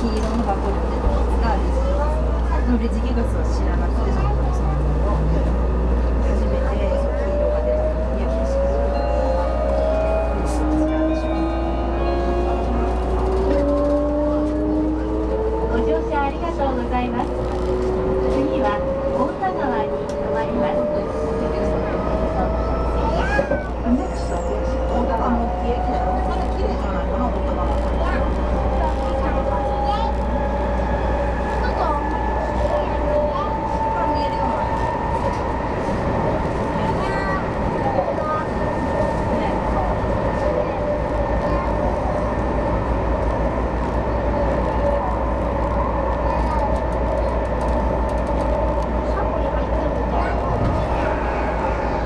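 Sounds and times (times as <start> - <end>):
train running rumble: 0.0 - 52.0.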